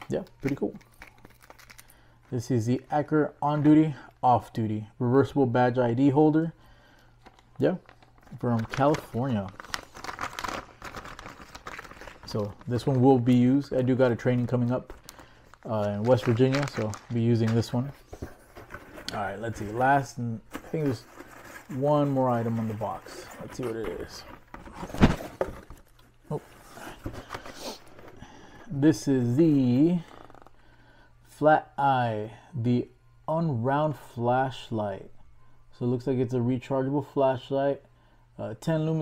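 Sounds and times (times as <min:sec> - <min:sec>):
plastic bag crinkling: 0:00.5 - 0:02.0, 0:07.3 - 0:20.1
cardboard and plastic rustling: 0:07.2 - 0:28.2.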